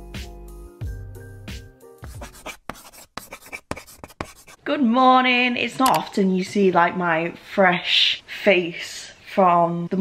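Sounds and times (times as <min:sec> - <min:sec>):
pen scratching on paper: 0:02.0 - 0:04.6.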